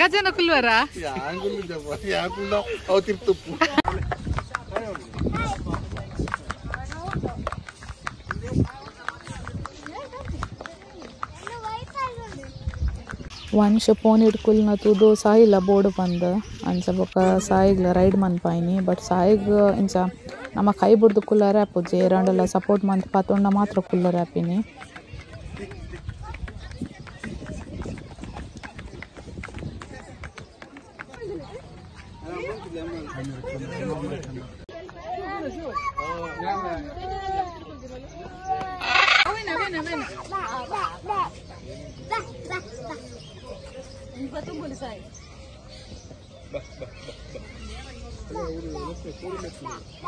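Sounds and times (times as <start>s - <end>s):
people's voices: 0.0s - 50.0s
pony hooves clip-clopping on tiles: 4.2s - 13.3s, 20.4s - 32.1s.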